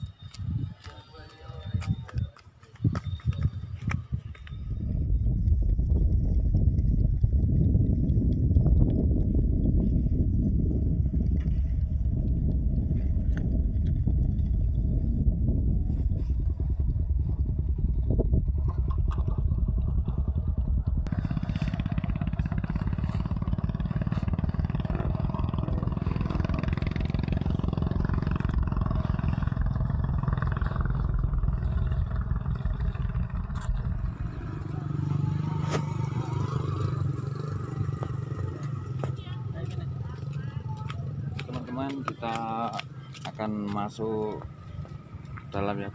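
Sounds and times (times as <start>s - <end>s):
motorcycle engine running: 0.0s - 45.9s
wind noise on microphone: 0.0s - 45.9s.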